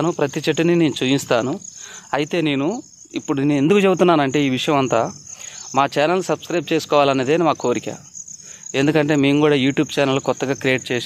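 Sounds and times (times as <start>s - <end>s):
man talking: 0.0s - 8.1s, 8.7s - 11.0s
insects chirring: 0.0s - 11.0s.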